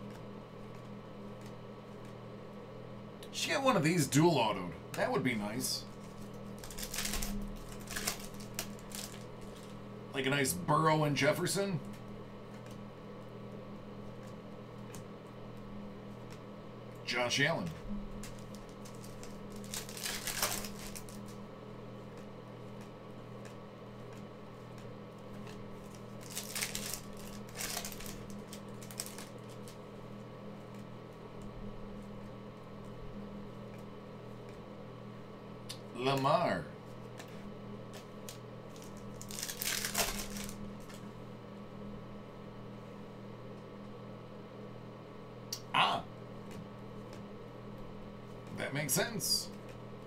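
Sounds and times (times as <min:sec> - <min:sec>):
soft clicks of trading cards: 0:00.0 - 0:02.2, 0:11.8 - 0:13.3
low electrical hum: 0:00.0 - 0:50.0
foil wrapper tearing and crinkling: 0:06.0 - 0:09.7, 0:18.2 - 0:21.4, 0:25.4 - 0:29.8, 0:38.2 - 0:40.9.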